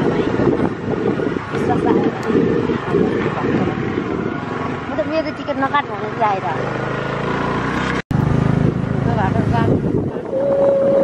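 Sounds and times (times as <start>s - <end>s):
vehicle engine running under load: 0.0s - 11.0s.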